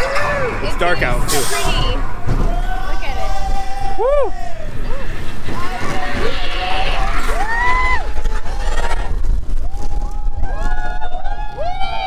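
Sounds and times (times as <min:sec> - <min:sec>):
wind rumble on microphone: 0:00.0 - 0:12.0
riders whooping and screaming: 0:02.4 - 0:12.0.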